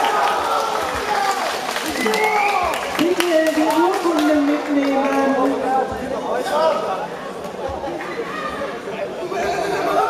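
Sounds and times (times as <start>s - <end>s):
indistinct chatter in a hall: 0.0s - 10.0s.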